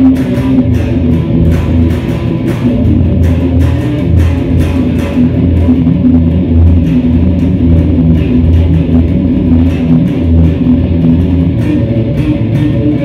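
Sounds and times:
bass: 0.0s - 13.0s
electric guitar playing: 0.0s - 13.0s.

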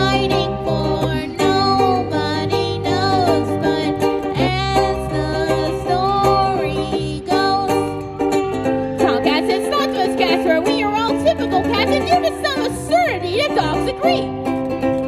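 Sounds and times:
woman singing: 0.0s - 8.0s, 9.0s - 14.3s
electric bass guitar: 0.0s - 15.0s
strummed acoustic string instrument: 0.0s - 15.0s.

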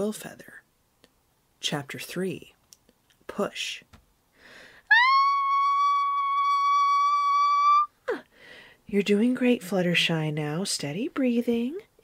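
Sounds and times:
breathy gasp: 4.4s - 4.9s, 8.1s - 8.9s
high-pitched vocal squeal: 4.9s - 8.3s.

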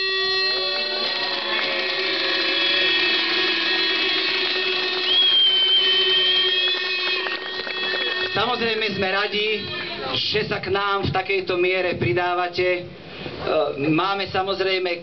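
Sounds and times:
shrill high whistle: 0.0s - 10.2s
crowd blowing horns: 0.0s - 10.3s.

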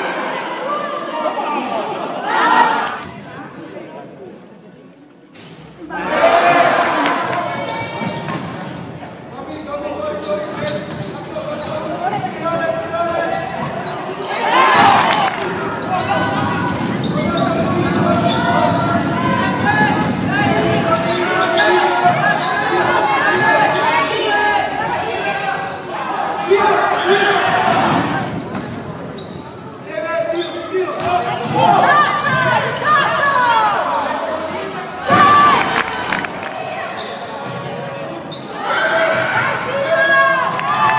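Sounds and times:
echoing crowd voices: 0.0s - 40.9s
shoe squeaks: 7.7s - 14.4s, 20.9s - 22.8s, 28.2s - 31.8s, 36.7s - 39.3s.

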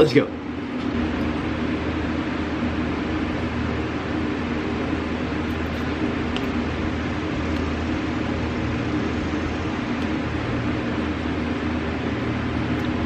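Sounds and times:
appliance humming: 0.0s - 13.0s.

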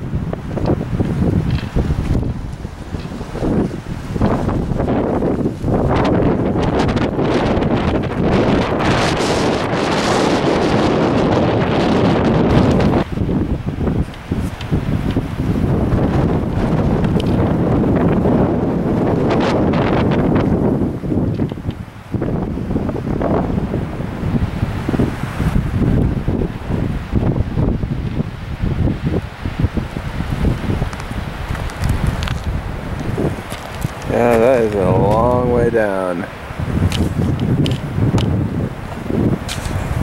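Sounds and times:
wind buffeting microphone: 0.0s - 40.0s
person's wavering voice: 34.1s - 36.3s.

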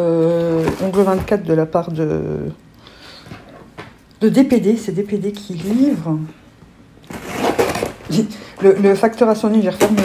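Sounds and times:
packaging crinkling and rustling: 0.4s - 1.5s, 7.0s - 8.2s.

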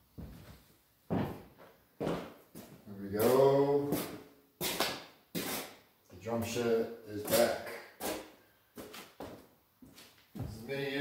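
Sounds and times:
boot footsteps on concrete: 1.1s - 2.8s.

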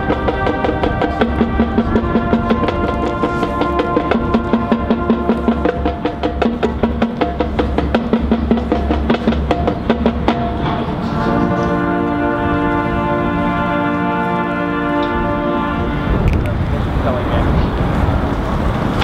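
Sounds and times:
drumline quick strokes: 0.0s - 12.0s
horns holding long chords: 0.0s - 18.7s.

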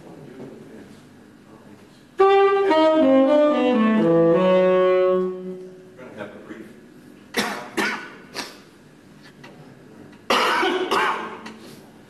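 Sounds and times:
person coughing: 7.3s - 8.6s, 10.3s - 11.5s
throat-clearing: 7.3s - 8.7s, 10.3s - 11.6s.

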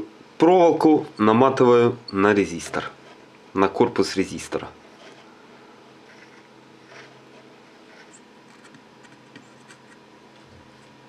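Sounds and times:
low steady hum: 0.0s - 11.0s
wire scratching and ticking: 2.3s - 3.4s, 6.0s - 10.0s.

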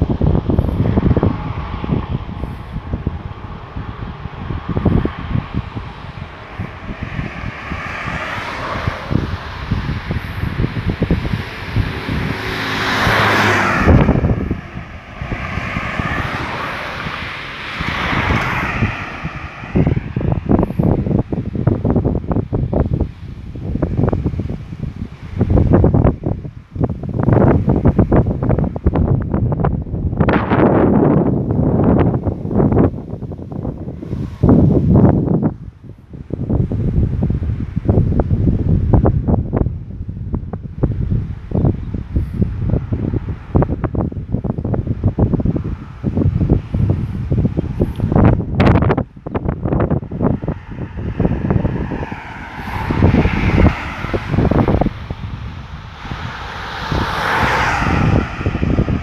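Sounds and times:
passing vehicle engine: 0.0s - 59.0s
wind buffeting microphone: 0.0s - 59.0s.

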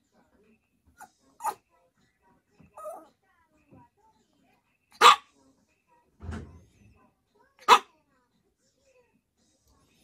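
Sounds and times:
dog barking: 4.9s - 5.3s, 7.6s - 7.9s.

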